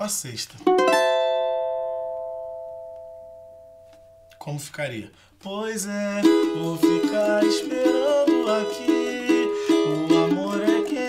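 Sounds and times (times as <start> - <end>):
strummed small guitar chord: 0.7 - 4.4.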